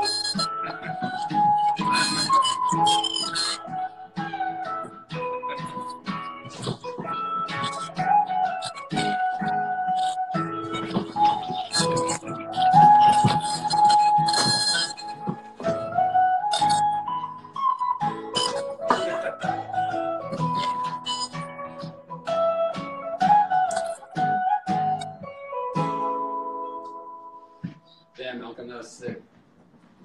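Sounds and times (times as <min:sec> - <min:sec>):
electric and acoustic guitars: 0:00.0 - 0:28.2.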